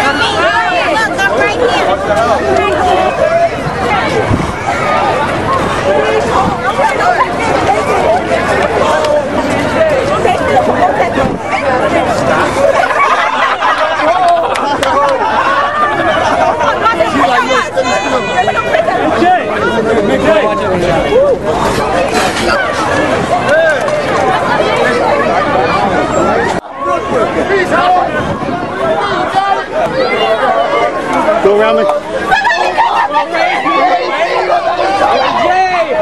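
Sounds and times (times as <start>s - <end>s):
dense crowd chatter: 0.0s - 36.0s
people talking over one another: 0.0s - 36.0s.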